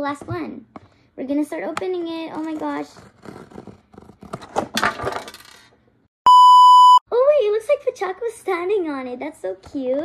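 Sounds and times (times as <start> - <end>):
flat censor bleep: 6.3 - 7.0.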